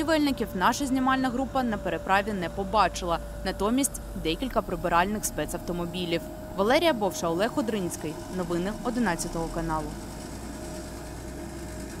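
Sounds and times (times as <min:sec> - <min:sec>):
bus engine humming: 0:00.0 - 0:12.0
faint constant tone: 0:00.0 - 0:12.0.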